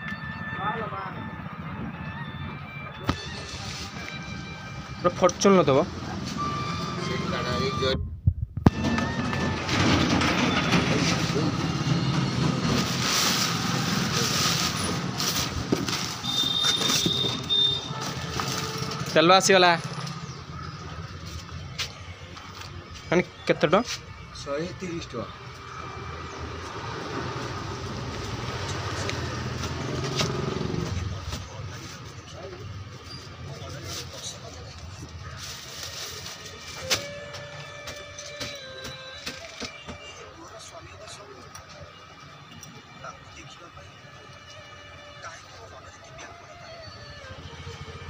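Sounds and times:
hissy street noise: 0.0s - 8.0s, 8.8s - 48.0s
traffic noise: 0.0s - 48.0s
vehicle engine passing by: 25.6s - 31.6s.

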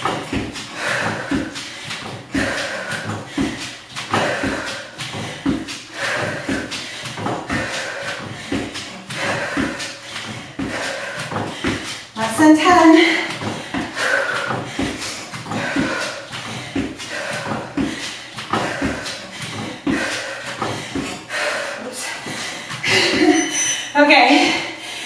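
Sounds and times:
sneaker steps on box and floor: 0.0s - 21.2s
heavy breathing: 0.0s - 25.0s.

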